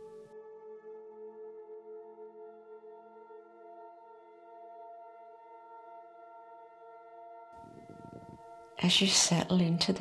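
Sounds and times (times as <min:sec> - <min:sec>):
ambient meditation music: 0:00.0 - 0:10.0.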